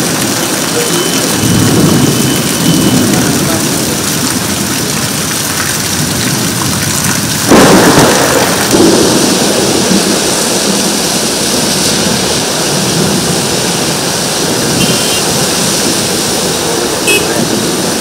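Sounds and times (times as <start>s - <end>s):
heavy rain: 0.0s - 18.0s
thunder rumbling: 0.0s - 18.0s
loud thunderclap: 1.3s - 16.6s.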